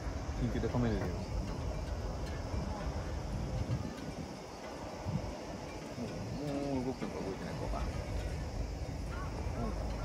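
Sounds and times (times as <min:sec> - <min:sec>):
faint outdoor background noise: 0:00.0 - 0:10.0
wind buffeting microphone: 0:00.0 - 0:10.0.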